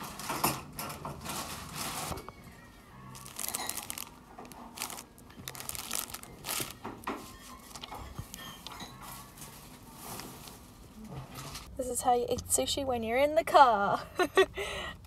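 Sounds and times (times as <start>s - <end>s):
plastic bag crinkling: 3.1s - 9.6s.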